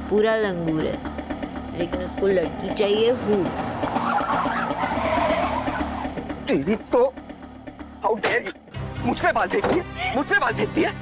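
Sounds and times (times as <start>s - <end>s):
car tyres screeching: 1.2s - 7.8s.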